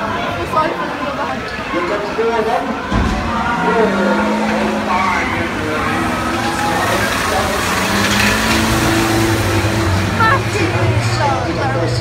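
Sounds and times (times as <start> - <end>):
people's voices: 0.0 - 12.0
van engines racing: 0.0 - 12.0.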